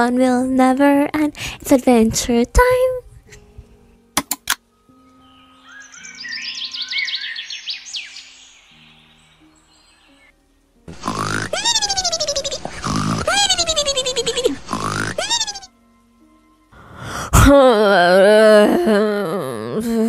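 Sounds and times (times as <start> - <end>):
soft background music: 0.0 - 20.0
quick rising chirps: 5.4 - 10.3
cartoon snoring: 10.9 - 15.7.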